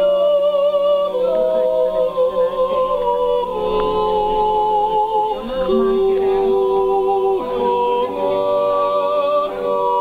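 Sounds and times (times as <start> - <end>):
group yodeling in harmony: 0.0 - 10.0.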